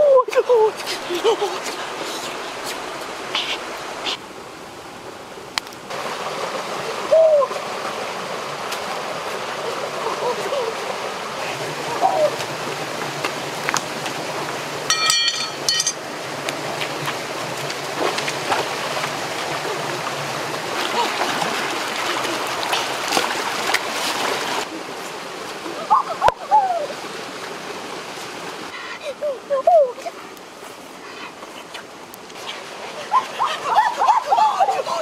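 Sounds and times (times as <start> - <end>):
stream and small waterfall: 0.0 - 35.0.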